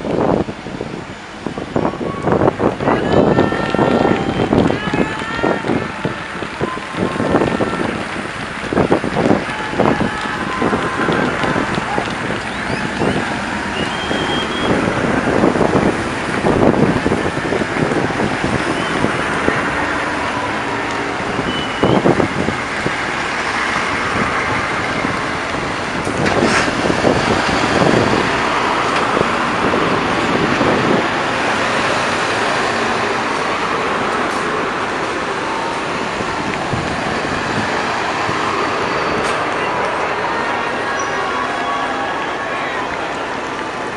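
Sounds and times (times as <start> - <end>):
vehicle engines: 0.0 - 43.9.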